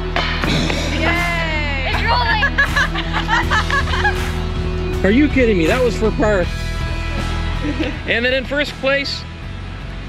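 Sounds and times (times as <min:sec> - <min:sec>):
background music: 0:00.0 - 0:10.0
people shouting excitedly: 0:00.9 - 0:02.6.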